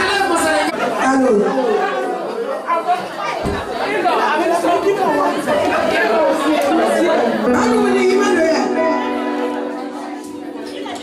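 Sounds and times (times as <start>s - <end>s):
hubbub of overlapping voices: 0.0s - 11.0s.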